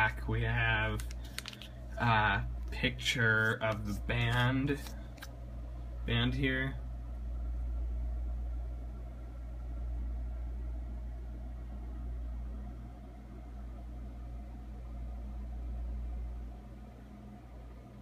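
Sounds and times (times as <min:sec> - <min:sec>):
faint electrical hum: 0:00.0 - 0:18.0.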